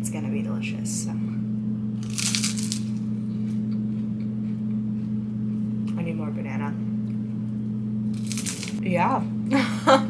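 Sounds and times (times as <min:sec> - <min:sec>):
steady low hum: 0:00.0 - 0:10.0
rice cake crunching: 0:02.0 - 0:04.6, 0:08.1 - 0:08.8.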